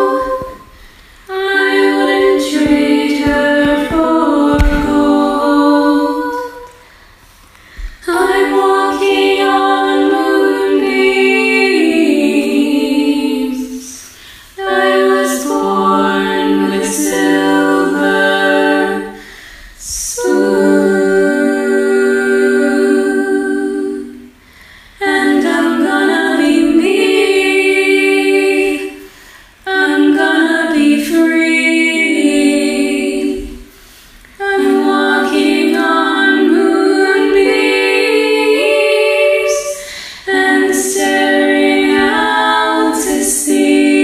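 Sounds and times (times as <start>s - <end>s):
a cappella vocal harmony: 0.0s - 44.0s.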